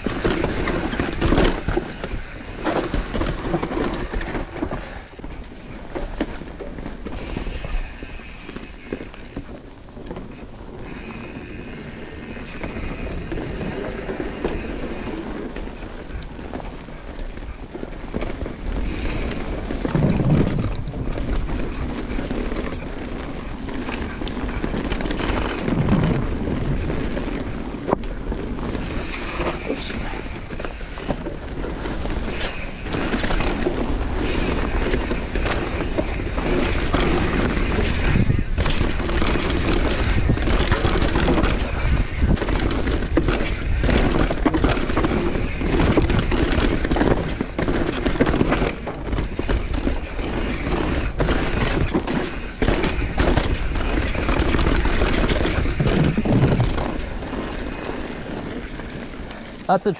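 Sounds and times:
bike rattling and knocking: 0.0s - 59.9s
tyres rumbling on dirt trail: 0.0s - 59.9s.

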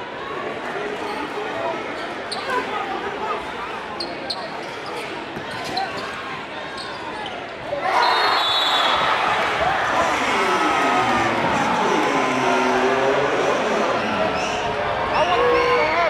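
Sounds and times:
crowd chatter echoing: 0.0s - 16.0s
sneaker squeaks: 4.0s - 7.4s
crowd cheering: 7.7s - 16.0s.

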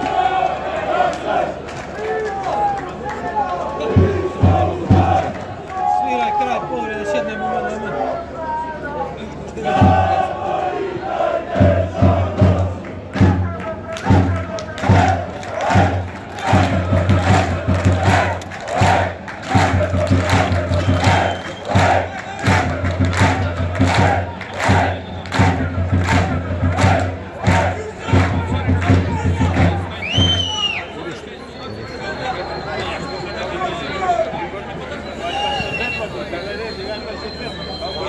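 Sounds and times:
crowd chanting in unison: 0.0s - 1.8s, 3.7s - 5.6s, 9.4s - 29.9s
sharp drum strikes: 9.7s - 10.2s, 11.6s - 30.4s.

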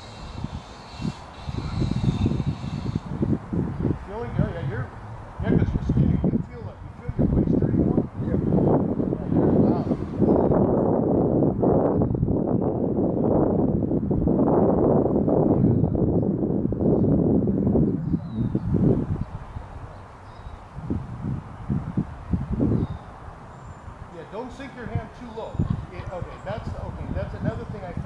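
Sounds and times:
wind buffeting microphone: 0.0s - 28.0s.

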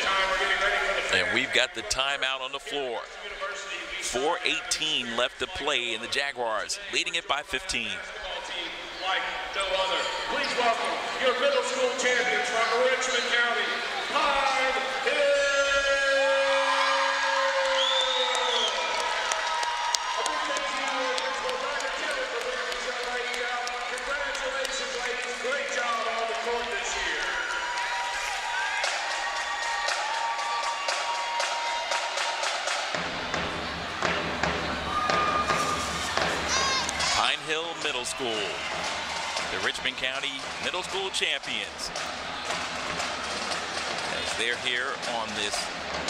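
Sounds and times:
crowd cheering and shouting: 0.0s - 46.0s
clapping: 17.4s - 33.0s.

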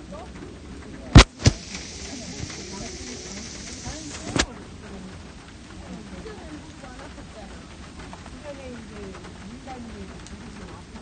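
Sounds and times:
rain falling: 0.0s - 11.0s
sharp knock: 1.2s - 4.5s.

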